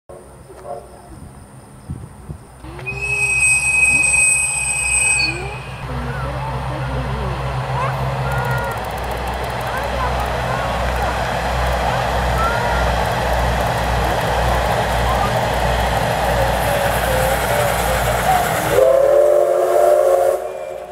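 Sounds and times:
high steady tone: 0:02.7 - 0:20.9
chime-like steam whistle: 0:02.8 - 0:05.8, 0:18.7 - 0:20.9
train wheels clattering on rails: 0:05.8 - 0:19.4.

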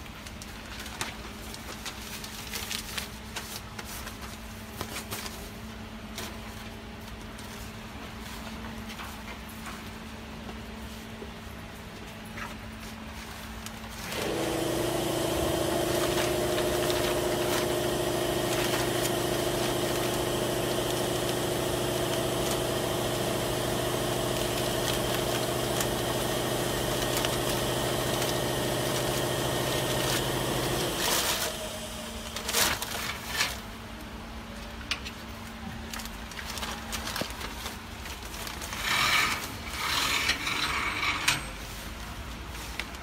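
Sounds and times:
electric motor humming: 0:14.1 - 0:32.3.

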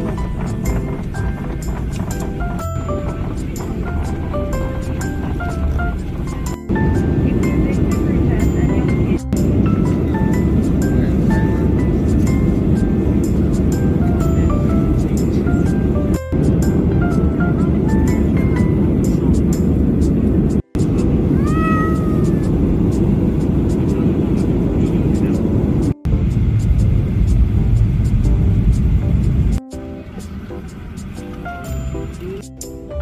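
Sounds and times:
light background music: 0:00.0 - 0:25.6, 0:26.2 - 0:33.0
airliner cabin noise: 0:00.0 - 0:33.0
cat meowing: 0:21.3 - 0:22.5.

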